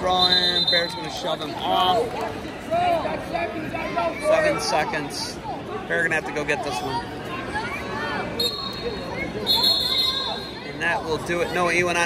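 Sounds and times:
referee's whistle blasts: 0.0s - 1.1s, 8.4s - 10.6s
crowd chatter: 0.0s - 12.0s.

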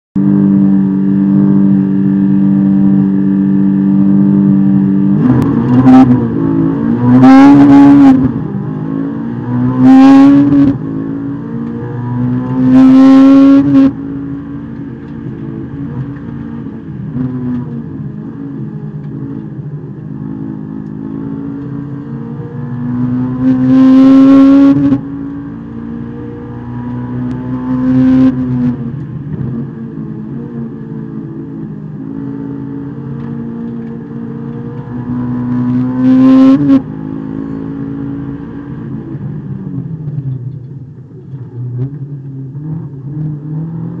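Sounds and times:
race car engine revving: 0.2s - 40.2s.

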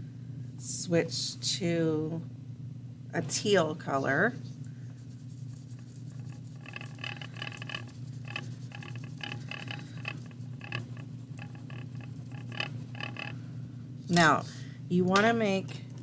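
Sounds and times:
crayon scratching on paper: 5.3s - 13.3s.

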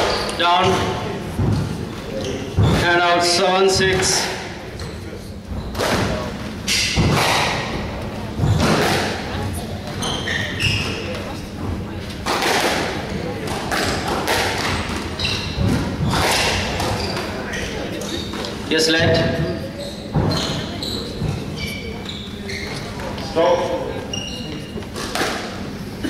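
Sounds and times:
squash ball hits echoing: 5.7s - 10.0s, 12.2s - 17.5s, 24.9s - 25.7s.

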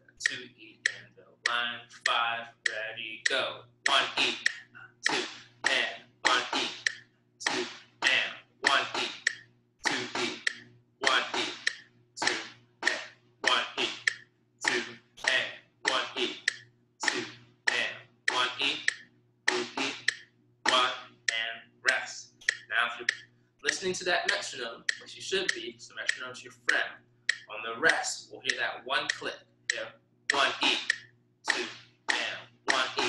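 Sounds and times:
snare drum struck with sticks: 3.9s - 18.9s, 19.5s - 20.9s, 30.3s - 33.0s.

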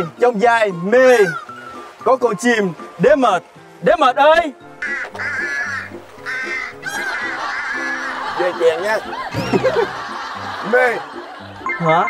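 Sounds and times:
light background music: 0.0s - 12.0s
cartoon bird squawking: 1.1s - 1.8s, 4.8s - 8.3s.

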